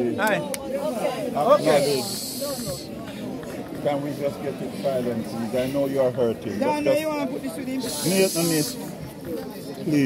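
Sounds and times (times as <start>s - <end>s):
murmured voices: 0.0s - 10.0s.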